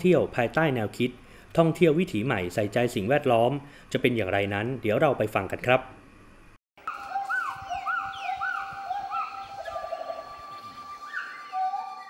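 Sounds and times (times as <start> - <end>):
bird trill: 6.8 - 12.0
birds whistling: 6.8 - 12.0
steady high bird whistle: 6.8 - 12.0.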